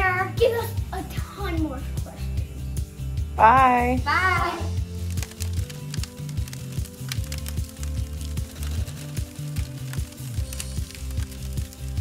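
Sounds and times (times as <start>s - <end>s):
background music with bass line: 0.0s - 12.0s
bonfire crackling: 4.5s - 12.0s.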